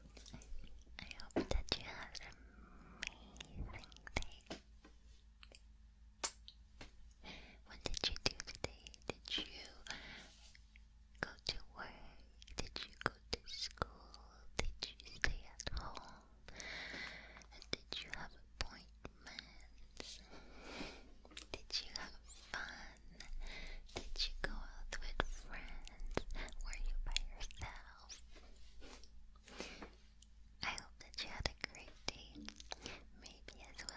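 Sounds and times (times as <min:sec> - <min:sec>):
person whispering: 0:00.0 - 0:04.6, 0:07.3 - 0:10.1, 0:11.2 - 0:16.4, 0:17.4 - 0:20.5, 0:21.3 - 0:29.0, 0:30.6 - 0:33.9.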